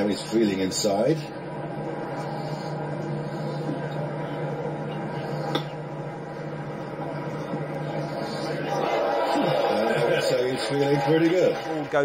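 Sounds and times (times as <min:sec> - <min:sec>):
television audio hum: 0:00.0 - 0:12.0
voices: 0:07.5 - 0:12.0.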